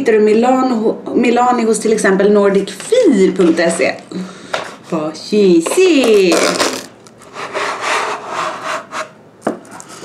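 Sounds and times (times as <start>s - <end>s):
cardboard lid scraping: 5.8s - 9.2s.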